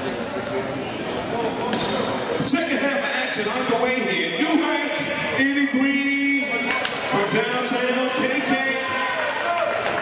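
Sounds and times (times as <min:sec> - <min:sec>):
voices and shouts echoing: 0:00.2 - 0:10.0.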